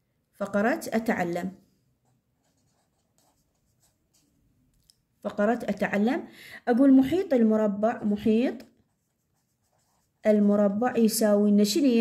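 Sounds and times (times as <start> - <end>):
pen scratching on paper: 2.1 - 4.4, 8.6 - 10.7.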